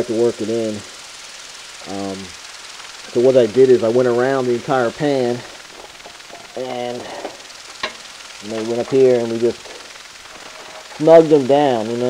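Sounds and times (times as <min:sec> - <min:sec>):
background hiss: 0:00.0 - 0:12.0
man saying um: 0:06.6 - 0:07.3.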